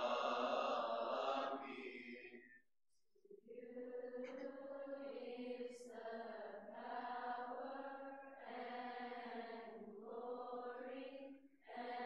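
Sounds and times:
voices chanting a hymn: 0.0s - 2.5s, 3.6s - 12.0s.

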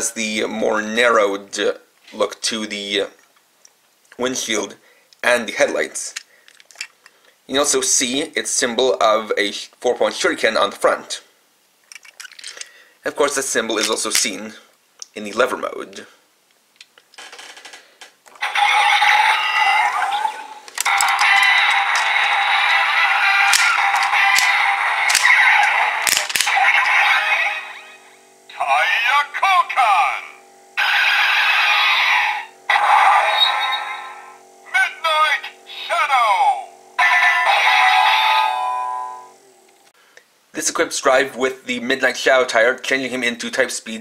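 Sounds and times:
recorded voice calls and effects: 0.0s - 3.2s, 4.2s - 6.2s, 28.5s - 38.6s, 40.5s - 44.0s
toy electronic standby music: 18.4s - 39.4s
toy click: 20.7s - 22.4s, 23.0s - 27.4s.

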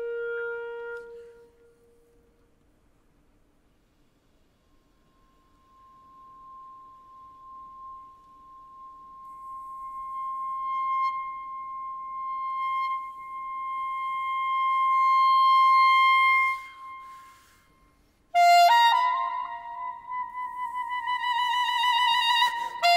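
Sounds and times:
clarinet long high note: 0.0s - 2.4s, 4.9s - 22.9s.

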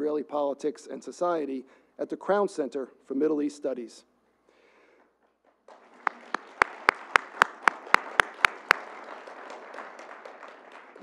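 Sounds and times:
close loud hand clapping: 5.2s - 11.0s
audience applauding: 5.6s - 11.0s.

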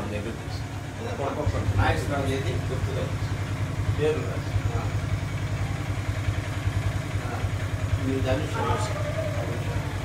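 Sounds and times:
motor drone with fast pulse: 0.0s - 10.0s
faint speech: 7.1s - 10.0s.

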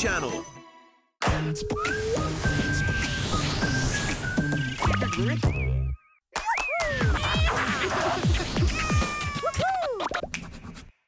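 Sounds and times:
music: 0.0s - 6.2s, 6.8s - 11.0s.

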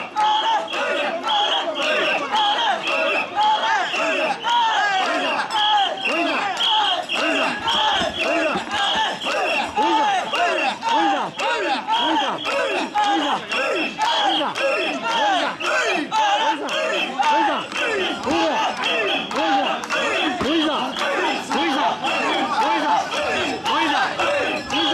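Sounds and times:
people chanting shouts in unison: 0.0s - 24.9s
hand claps: 5.0s - 24.9s.

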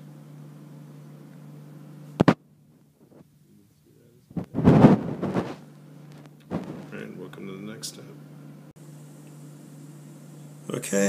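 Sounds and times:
steady low hum: 0.0s - 11.0s
microphone handling noise: 2.2s - 2.4s, 4.3s - 7.1s
loud rumbling rub: 4.4s - 7.1s.

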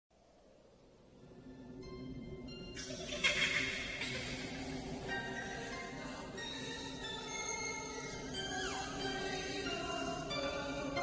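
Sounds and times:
low music drone: 0.9s - 11.0s.

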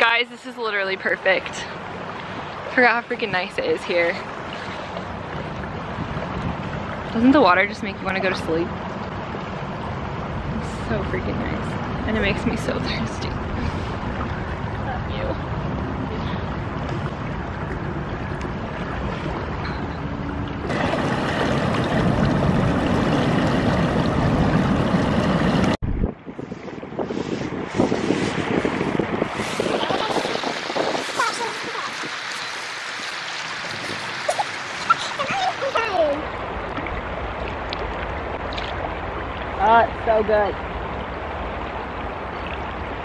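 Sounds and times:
fast-flowing water: 0.0s - 25.8s, 27.7s - 43.0s
wind buffeting microphone: 1.9s - 43.0s.

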